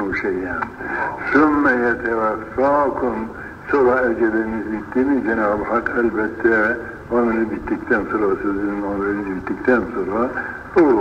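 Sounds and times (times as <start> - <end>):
man talking in old recording: 0.0 - 11.0.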